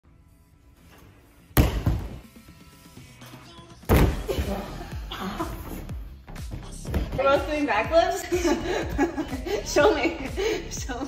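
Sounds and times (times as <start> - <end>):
gymnast landing thud: 1.5 - 2.3, 3.9 - 4.5.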